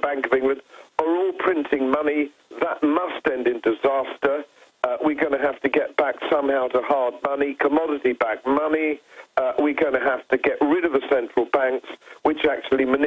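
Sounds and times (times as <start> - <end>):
man talking over phone: 0.0 - 13.0.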